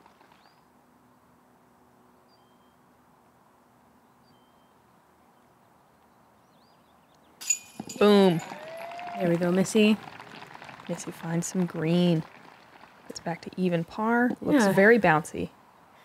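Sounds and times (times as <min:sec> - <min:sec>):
faint bird chirps: 0:02.2 - 0:02.9, 0:04.0 - 0:07.4.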